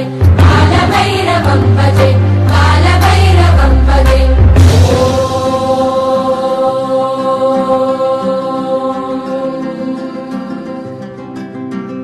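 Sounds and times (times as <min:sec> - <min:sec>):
devotional chant drone: 0:00.0 - 0:11.3.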